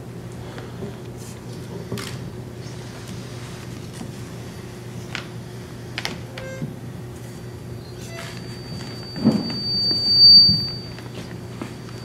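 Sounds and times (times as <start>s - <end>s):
low steady hum: 0.0s - 12.0s
microphone feedback whistle: 6.3s - 6.8s, 7.8s - 12.0s.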